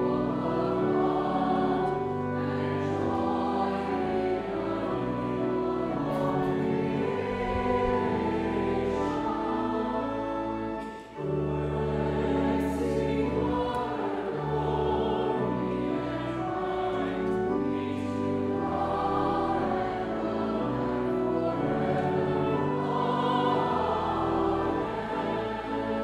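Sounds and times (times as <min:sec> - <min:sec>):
congregation singing a hymn: 0:00.0 - 0:26.0.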